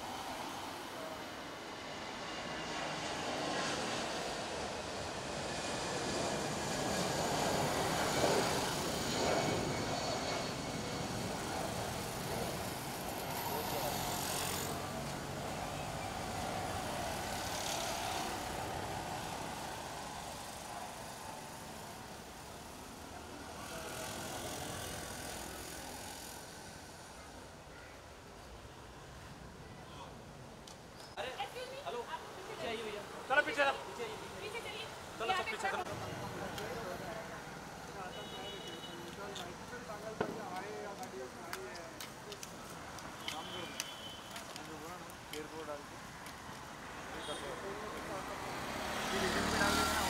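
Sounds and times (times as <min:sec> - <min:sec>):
road traffic: 0:00.0 - 0:50.0.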